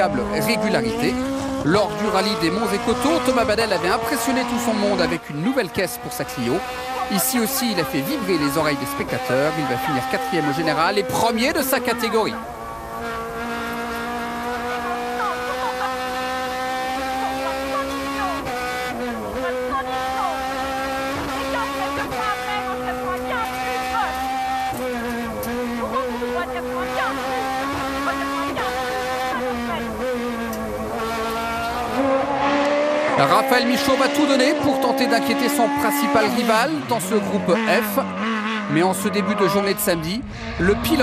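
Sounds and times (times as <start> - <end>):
car engine at high revs: 0.0 - 41.0.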